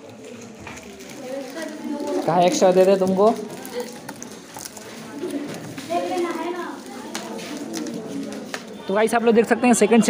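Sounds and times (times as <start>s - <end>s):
children's voices in background: 0.0s - 10.0s.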